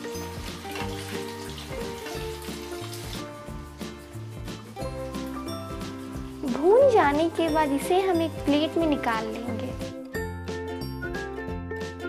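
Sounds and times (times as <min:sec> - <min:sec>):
food sizzling in hot oil: 0:00.0 - 0:09.8
upbeat instrumental music: 0:00.0 - 0:12.0.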